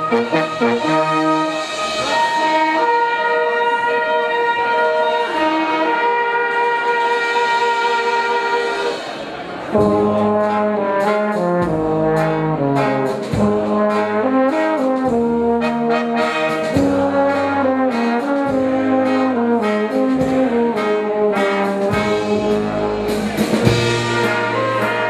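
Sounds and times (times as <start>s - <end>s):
brass band playing: 0.0s - 25.0s
drums steady beat: 0.0s - 25.0s
tuba bass line: 0.0s - 25.0s.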